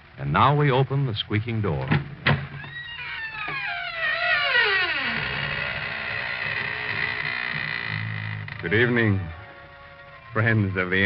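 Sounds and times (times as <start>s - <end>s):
door hinge creaking: 1.9s - 11.0s
sustained musical chord: 8.6s - 11.0s.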